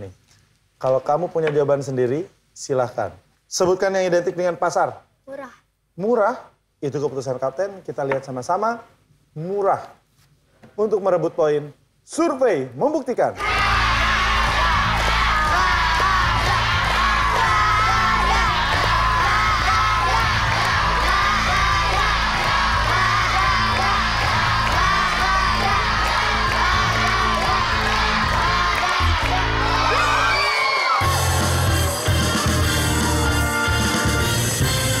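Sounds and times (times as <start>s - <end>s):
children shouting and cheering: 13.4s - 33.6s
game show music with low drone: 13.6s - 30.3s, 31.0s - 35.0s.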